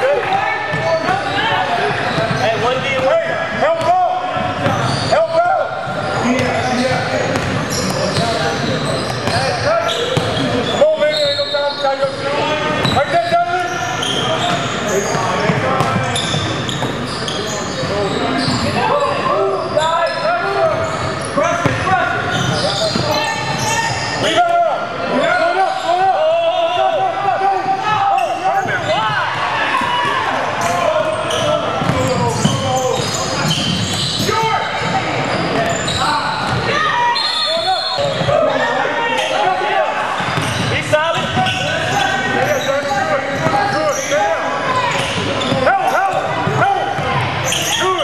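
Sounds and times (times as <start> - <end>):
people calling out and talking: 0.0 - 48.0.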